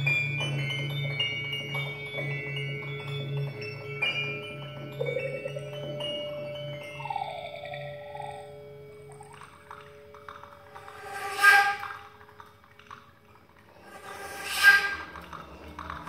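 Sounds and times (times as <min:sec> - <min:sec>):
flute and piano held tones: 0:00.0 - 0:12.8, 0:14.0 - 0:16.0.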